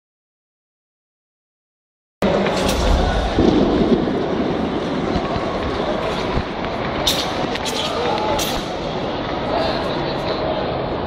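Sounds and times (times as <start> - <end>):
low rumble: 2.2 - 6.0
sports hall background noise: 2.2 - 11.0.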